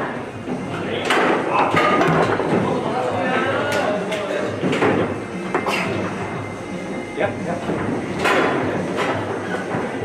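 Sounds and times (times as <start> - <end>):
background chatter in a hall: 0.0 - 10.0
foosball rods knocking: 0.6 - 2.8, 7.6 - 10.0
foosball ball clacks: 7.6 - 10.0.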